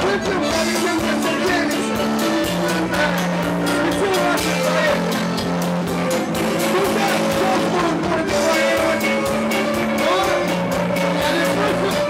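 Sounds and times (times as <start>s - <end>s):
accordion chords: 0.0s - 12.0s
drum kit beat: 0.0s - 12.0s
electric guitar: 0.0s - 12.0s.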